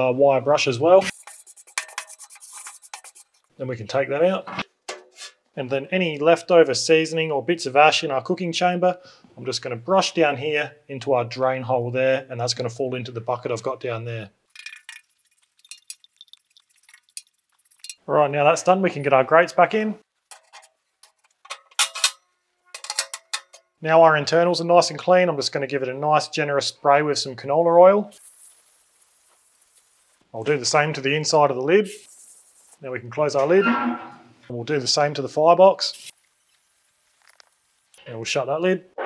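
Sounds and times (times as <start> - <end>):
metal grates clinking: 1.1 - 3.4, 14.5 - 18.0, 20.3 - 23.7.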